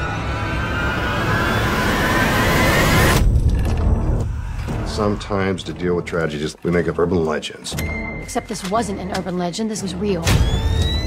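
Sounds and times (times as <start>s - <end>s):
dense noise riser with screeching tones: 0.0s - 3.2s.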